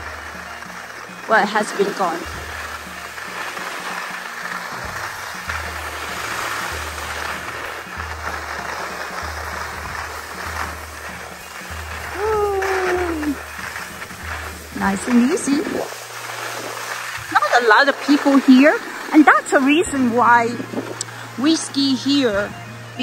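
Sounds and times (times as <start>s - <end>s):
music with pulsing bass: 0.0s - 17.7s
skis hissing over snow: 0.0s - 23.0s
voice humming: 12.1s - 13.4s.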